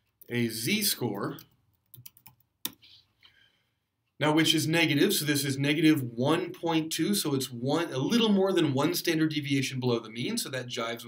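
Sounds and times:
computer keyboard clicks: 1.4 - 2.8.

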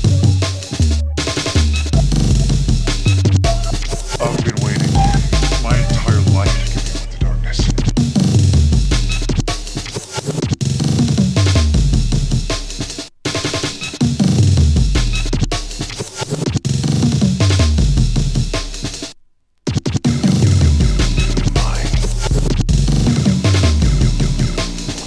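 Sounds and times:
fast chopped breakbeat drums: 0.0 - 25.0
deep bass notes stepping downward: 2.0 - 9.1.

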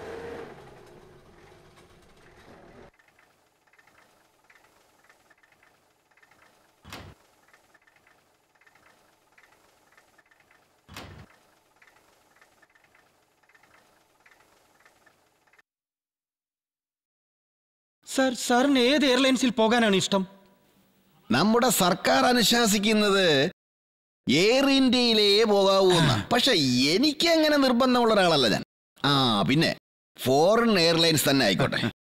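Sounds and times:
car doors shutting: 6.8 - 7.2, 10.9 - 11.3.

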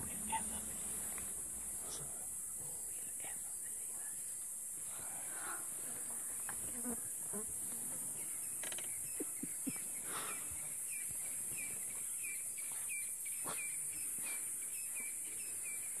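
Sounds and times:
high-pitched hiss: 0.0 - 6.8.

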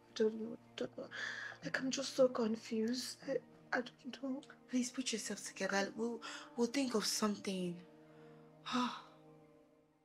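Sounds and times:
woman sighing and sobbing: 8.6 - 9.2.

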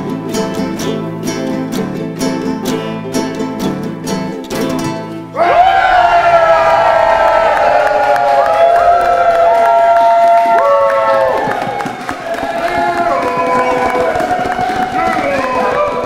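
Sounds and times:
crowd cheering and whooping: 5.4 - 16.0.

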